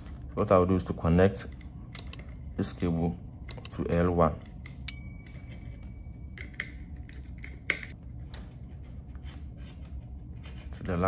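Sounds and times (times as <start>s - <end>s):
screwdriver clicking and scraping: 6.4s - 8.0s.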